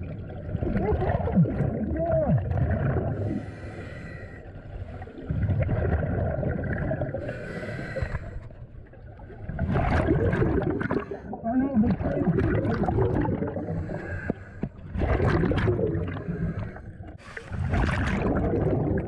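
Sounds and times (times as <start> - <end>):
gurgling exhaled bubbles underwater: 0.0 - 19.0.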